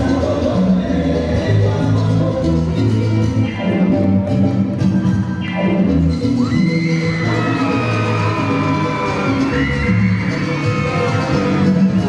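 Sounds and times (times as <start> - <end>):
salsa dance music: 0.0 - 12.0.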